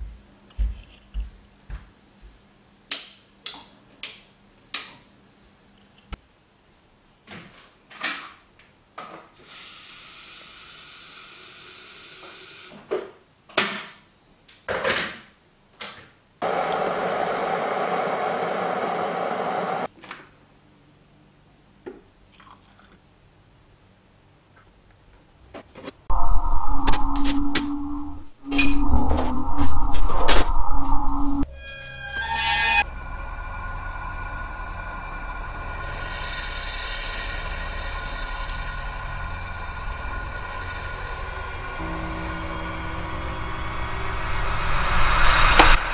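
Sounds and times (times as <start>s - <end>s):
loud low drone: 26.1s - 32.0s, 32.6s - 45.9s.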